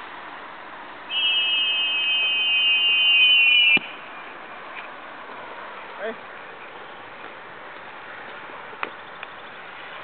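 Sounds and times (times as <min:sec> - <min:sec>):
high steady whistle: 0:01.1 - 0:04.1.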